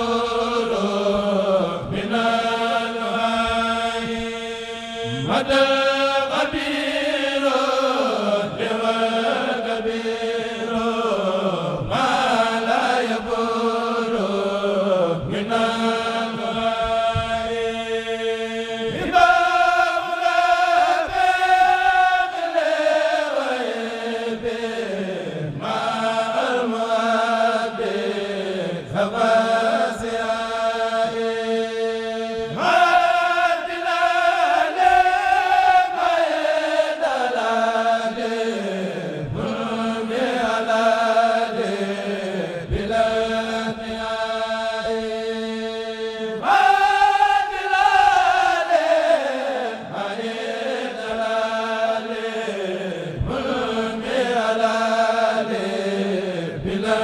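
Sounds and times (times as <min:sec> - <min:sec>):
men chanting in unison: 0:00.0 - 0:57.0.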